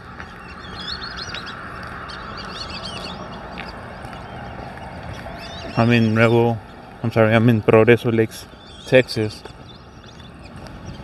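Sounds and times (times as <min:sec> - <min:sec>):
birds chattering and chirping: 0:00.0 - 0:11.0.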